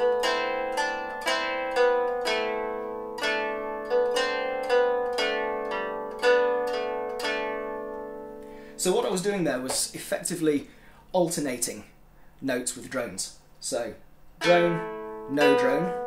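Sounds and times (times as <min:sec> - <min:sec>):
lyre plucked notes: 0:00.0 - 0:10.0, 0:14.4 - 0:16.0.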